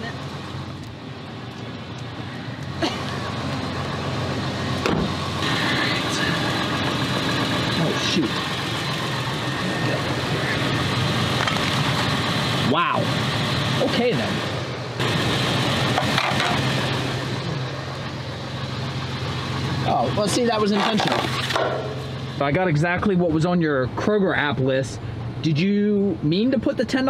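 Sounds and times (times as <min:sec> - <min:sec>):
vehicle engine running: 0:00.0 - 0:27.0.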